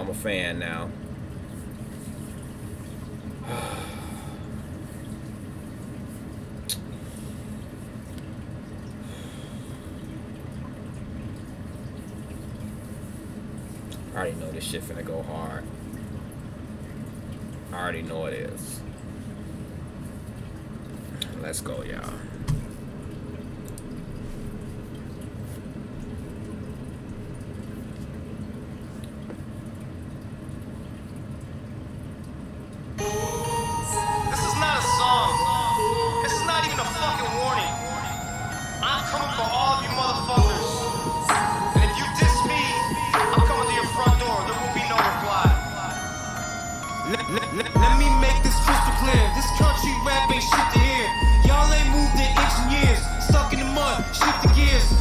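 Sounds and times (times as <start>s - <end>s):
low steady rumble: 0.0s - 46.0s, 47.7s - 55.0s
steady low rumble: 39.0s - 45.7s, 47.8s - 55.0s.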